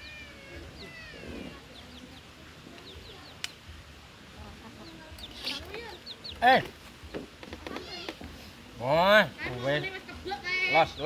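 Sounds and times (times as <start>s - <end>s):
chickens clucking: 0.0s - 3.6s, 4.3s - 8.7s
high bird chirps: 4.8s - 6.6s.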